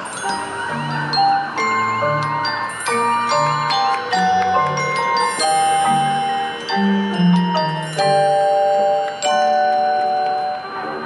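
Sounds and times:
mallet percussion ringing chords: 0:00.0 - 0:11.0.

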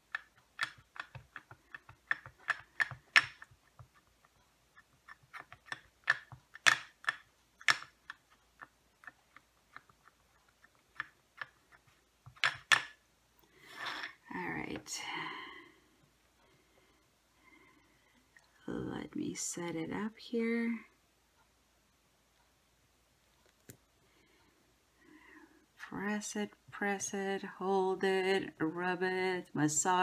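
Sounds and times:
person speaking: 0:13.6 - 0:15.9, 0:18.5 - 0:21.0, 0:25.8 - 0:30.0.

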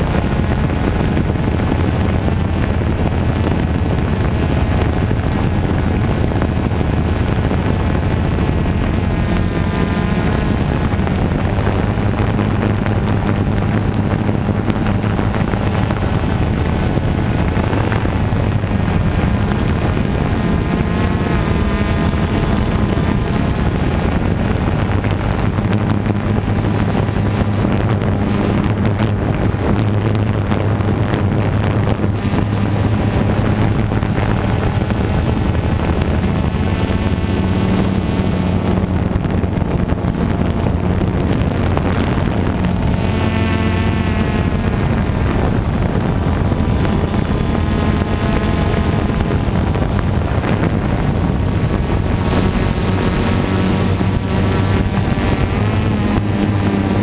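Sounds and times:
drone propellers humming: 0:00.0 - 0:57.0
wind noise on microphone: 0:00.0 - 0:57.0.

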